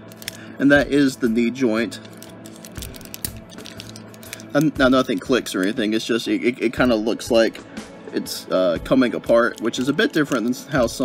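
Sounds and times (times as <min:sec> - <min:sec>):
quiet background music: 0:00.0 - 0:11.0
plastic parts clicking: 0:00.1 - 0:00.4, 0:02.0 - 0:05.8.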